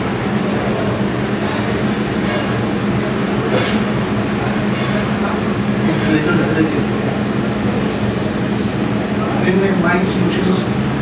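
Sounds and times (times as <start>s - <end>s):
loud mechanical drone: 0.0s - 11.0s.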